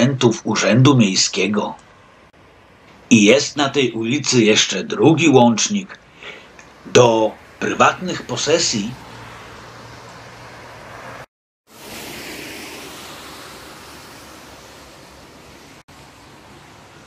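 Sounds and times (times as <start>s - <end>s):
tyres hissing on wet asphalt: 6.0s - 17.0s.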